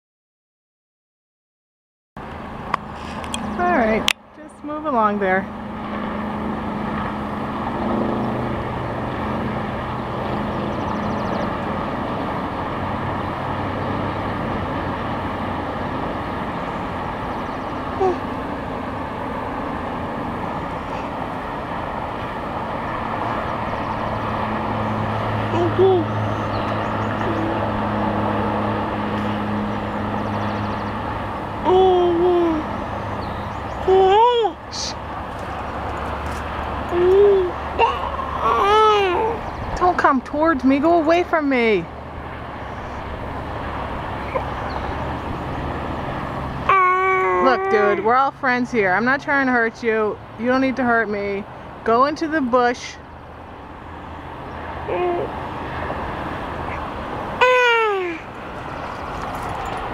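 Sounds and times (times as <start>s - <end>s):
baby cooing: 31.6s - 32.7s, 36.9s - 39.4s, 46.7s - 48.1s, 54.9s - 55.4s, 57.4s - 58.3s
rattlesnake rattling: 58.4s - 59.9s.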